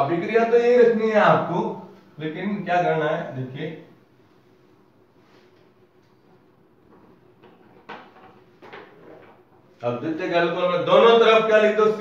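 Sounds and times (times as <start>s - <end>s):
man speaking: 0.0s - 4.0s, 9.8s - 12.0s.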